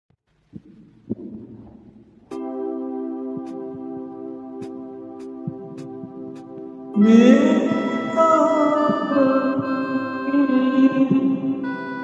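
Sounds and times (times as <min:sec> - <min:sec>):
low muffled rumble: 0:00.4 - 0:02.2.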